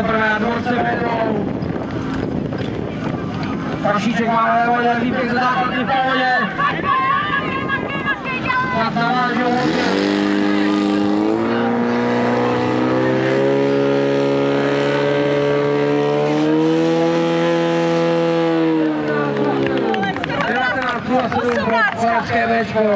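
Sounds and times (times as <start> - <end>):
pump engine revving hard: 8.9 - 20.0.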